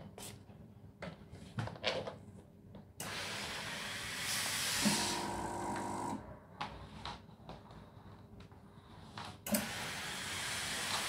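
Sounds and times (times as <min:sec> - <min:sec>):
steam hissing: 0:03.0 - 0:05.3, 0:09.5 - 0:11.0.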